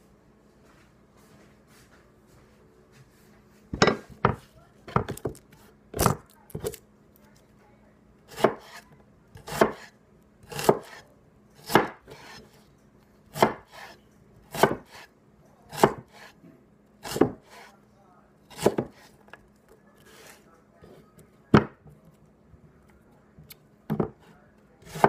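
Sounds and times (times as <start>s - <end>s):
knife chopping onion on board: 3.8s - 6.8s, 8.3s - 8.8s, 9.4s - 11.0s, 11.6s - 12.6s, 13.3s - 15.1s, 15.7s - 16.4s, 17.0s - 17.7s, 18.5s - 19.4s, 23.4s - 25.0s.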